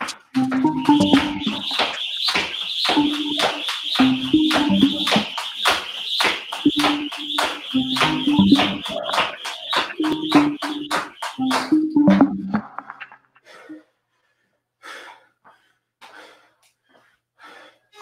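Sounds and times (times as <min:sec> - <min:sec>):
background music: 0:00.0 - 0:01.8, 0:02.9 - 0:05.4, 0:06.7 - 0:13.1
jump rope slapping floor mat: 0:01.8 - 0:03.9, 0:05.2 - 0:07.6.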